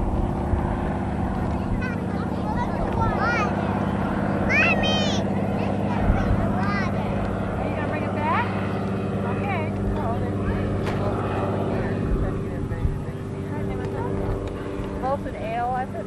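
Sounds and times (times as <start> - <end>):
steady low hum: 0.0 - 16.0
children calling and shouting: 1.3 - 8.7.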